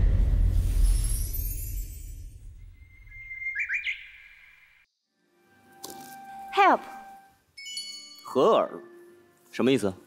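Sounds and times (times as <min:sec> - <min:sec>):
bird-like chirping: 0:02.8 - 0:04.9.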